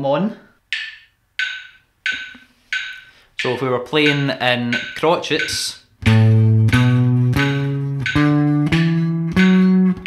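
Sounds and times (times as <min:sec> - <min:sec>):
metronome ticking: 0:00.7 - 0:10.0.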